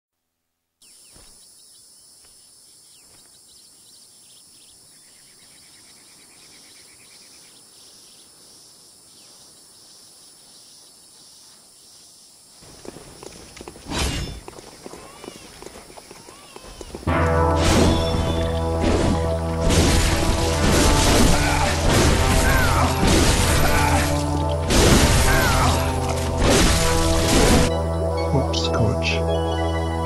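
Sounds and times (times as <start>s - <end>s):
thud: 17.6s - 27.7s.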